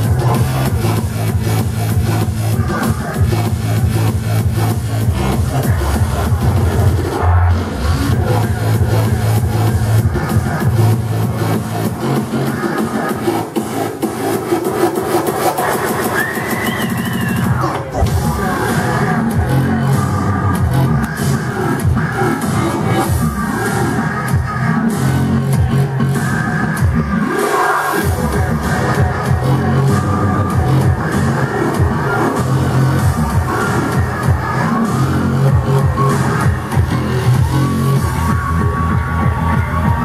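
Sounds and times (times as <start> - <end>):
heavy bass line: 0.0 - 40.0
loud techno music: 0.0 - 40.0.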